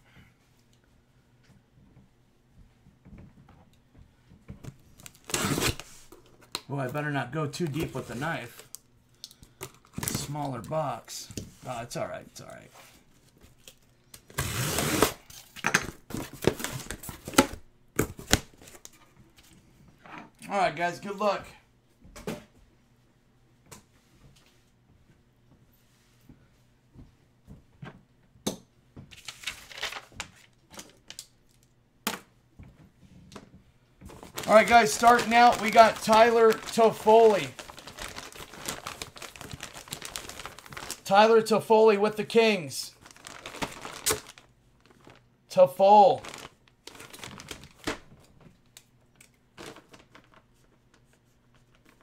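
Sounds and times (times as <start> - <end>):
plastic bag crinkling: 5.0 - 6.0, 29.2 - 31.7, 34.1 - 41.1, 42.9 - 45.3, 46.0 - 48.3, 49.5 - 52.0.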